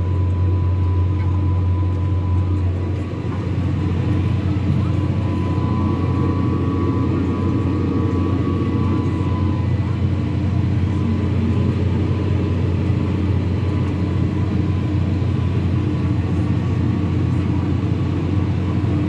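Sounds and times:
faint high whine: 0.0 - 19.0
tractor diesel engine drone: 0.0 - 19.0.

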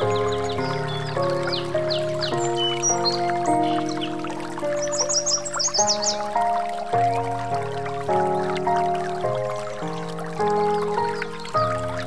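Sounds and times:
birdsong chirps: 0.0 - 12.0
running water: 0.0 - 12.0
soft relaxation music: 0.0 - 12.0.

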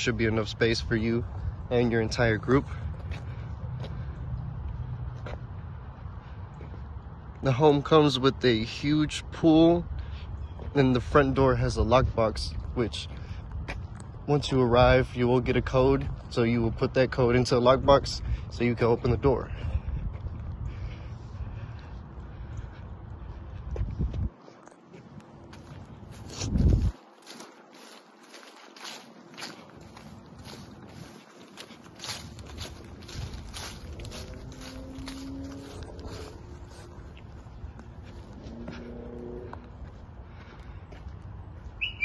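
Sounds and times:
footsteps crunching dry leaves: 24.2 - 42.0
low microphone rumble: 25.9 - 27.0, 29.8 - 40.5.

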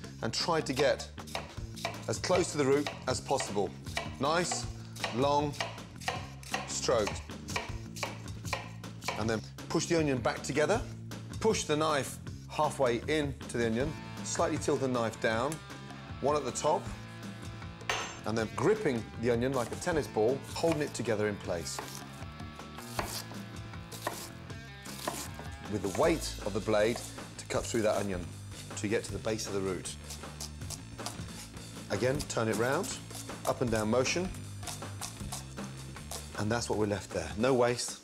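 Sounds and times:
knife slicing onion: 0.8 - 9.3, 20.4 - 28.8, 29.4 - 36.4.

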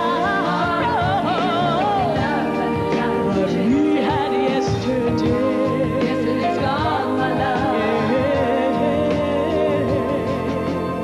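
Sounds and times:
woman singing with vibrato: 0.0 - 10.7
band accompaniment: 0.0 - 11.0.

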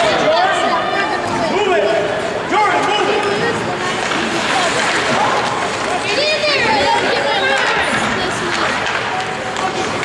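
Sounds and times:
spectators' voices: 0.0 - 10.0
skates scraping on ice: 3.1 - 10.0.

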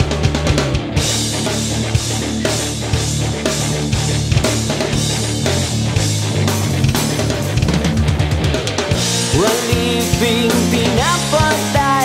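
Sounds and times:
fast drum fill: 0.0 - 12.0
rock band instrumental: 0.0 - 12.0.

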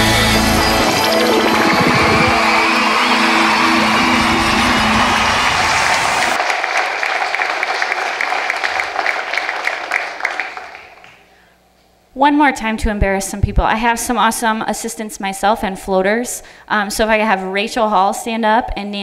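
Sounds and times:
music: 0.0 - 6.4
audience applause: 0.0 - 11.3.

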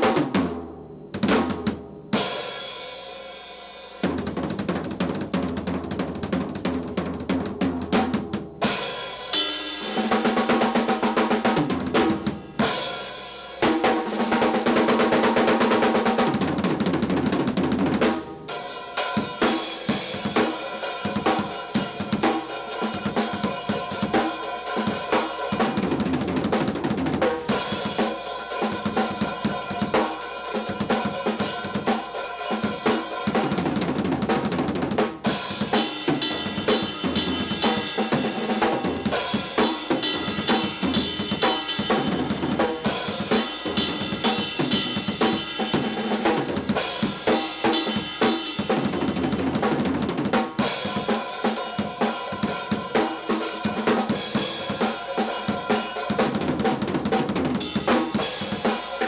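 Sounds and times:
drum kit solo: 0.0 - 59.0.

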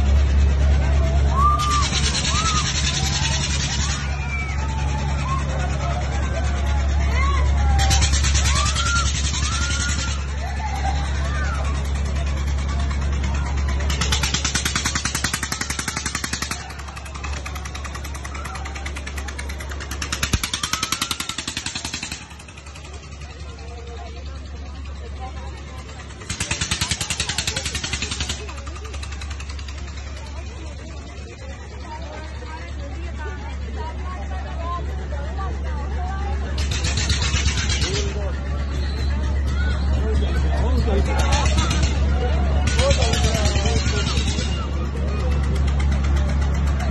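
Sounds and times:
crowd voices: 0.0 - 46.9.

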